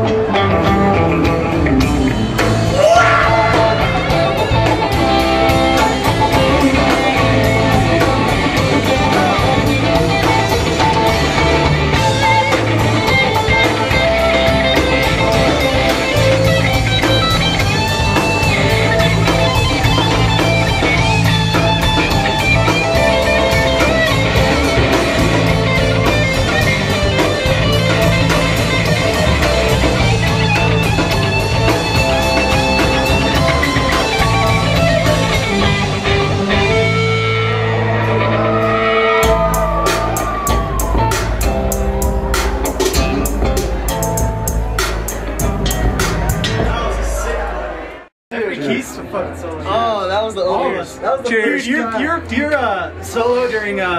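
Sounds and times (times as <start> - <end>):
electric guitar: 0.0 - 46.8
rock band playing: 0.0 - 48.1
steady cymbal beat: 39.2 - 47.8.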